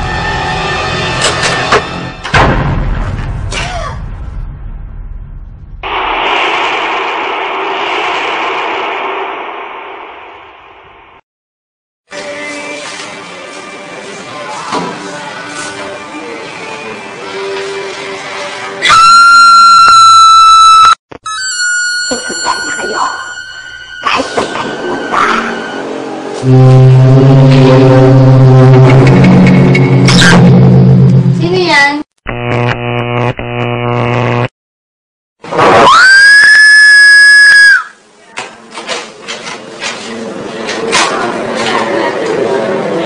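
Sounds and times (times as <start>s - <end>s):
loud high-pitched tone: 18.9s - 31.4s.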